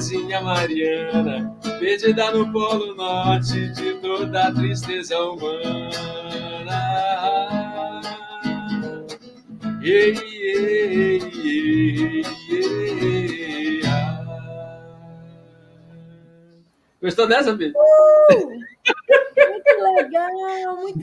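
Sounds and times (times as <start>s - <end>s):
man singing: 0.0s - 9.2s, 9.8s - 16.6s
acoustic guitar strumming: 0.0s - 16.8s.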